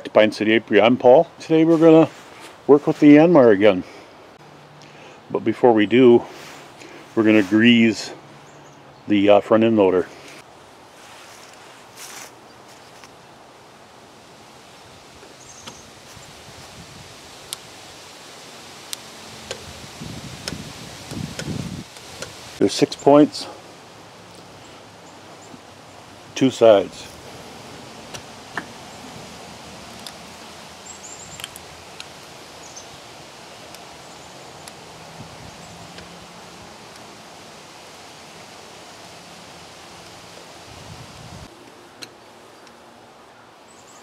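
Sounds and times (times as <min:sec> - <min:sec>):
outdoor background hiss: 0:00.0 - 0:44.0
rustling handling noise: 0:06.3 - 0:08.0, 0:10.2 - 0:13.3.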